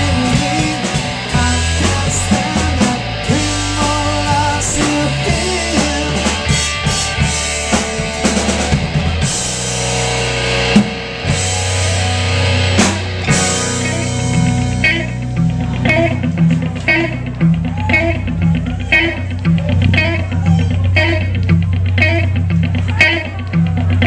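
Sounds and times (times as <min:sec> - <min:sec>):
distorted electric guitar: 0:00.0 - 0:24.0
drum kit with cymbals: 0:00.0 - 0:24.0.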